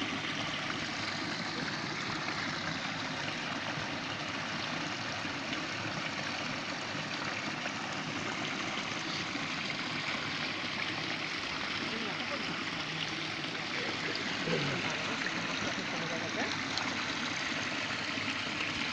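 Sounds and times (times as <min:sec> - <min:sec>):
stream water rushing and trickling: 0:00.0 - 0:18.9.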